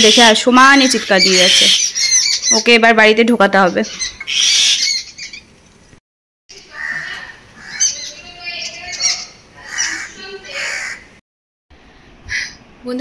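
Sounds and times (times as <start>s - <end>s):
mynas chirping and calling: 0.0s - 5.5s, 6.5s - 11.2s, 12.2s - 12.6s.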